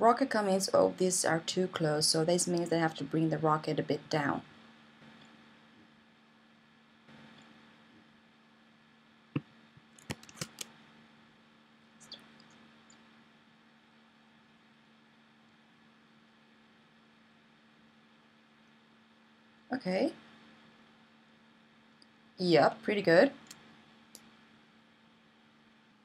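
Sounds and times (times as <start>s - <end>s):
steady low hum: 0.0s - 26.0s
computer mouse clicks: 9.4s - 10.7s.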